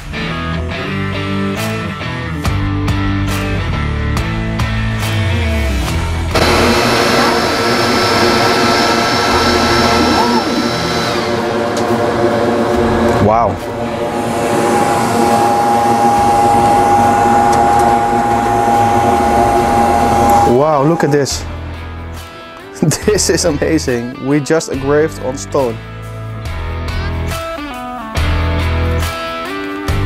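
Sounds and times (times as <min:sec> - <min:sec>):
laser engraver whirring and whining: 0:06.3 - 0:21.5.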